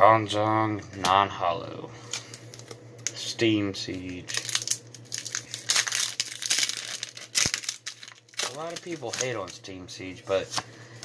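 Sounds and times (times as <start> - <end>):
foil wrapper crinkling: 4.0 - 10.8.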